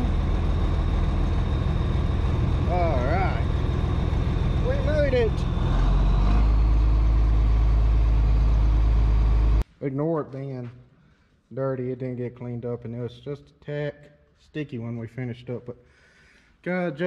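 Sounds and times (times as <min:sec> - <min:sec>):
tractor diesel engine rumble: 0:00.0 - 0:09.6.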